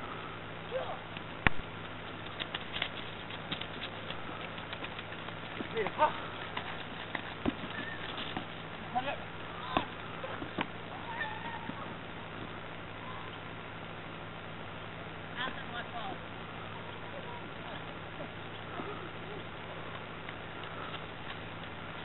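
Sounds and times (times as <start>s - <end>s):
steady low hum: 0.0s - 22.0s
distant shouts from players: 8.9s - 12.0s.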